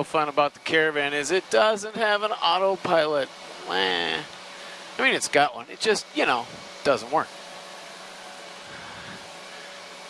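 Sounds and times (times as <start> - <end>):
turboprop engine hiss and whine: 0.0 - 10.0.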